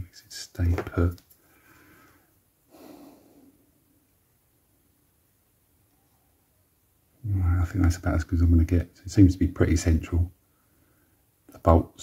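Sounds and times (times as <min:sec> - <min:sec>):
faint breath through nose: 0:01.4 - 0:03.7.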